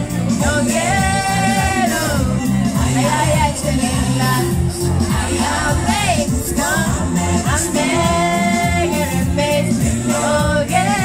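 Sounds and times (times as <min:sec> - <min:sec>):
karaoke backing track: 0:00.0 - 0:11.0
woman singing into microphone: 0:00.1 - 0:11.0.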